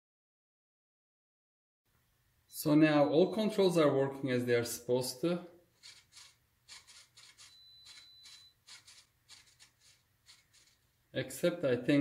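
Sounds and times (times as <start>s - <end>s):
servo whirs: 5.8s - 10.8s.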